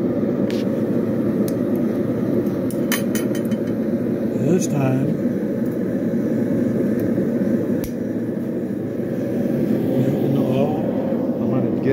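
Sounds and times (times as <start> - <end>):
propane burner roaring: 0.0 - 11.9.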